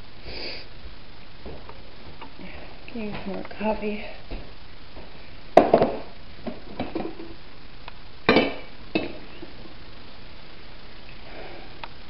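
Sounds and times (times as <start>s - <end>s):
kitchenware clinking: 8.3s - 9.3s.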